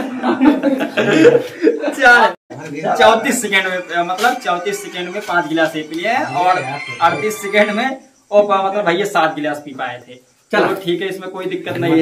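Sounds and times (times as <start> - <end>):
men chuckling and laughing: 0.0 - 2.0
men talking: 1.0 - 12.0.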